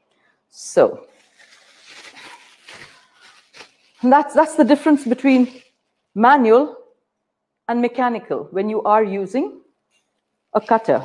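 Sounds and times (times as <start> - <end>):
plastic bag rustling: 1.1 - 6.2.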